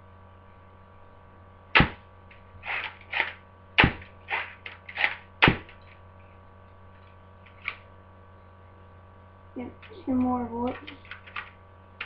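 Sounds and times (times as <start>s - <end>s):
faint steady hum: 0.0s - 12.0s
toy gun firing snap: 2.7s - 5.7s.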